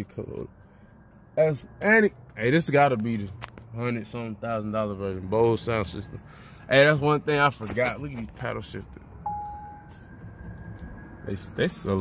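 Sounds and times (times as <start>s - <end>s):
steady clear tone: 9.1s - 12.0s
faint higher tone: 9.2s - 10.0s.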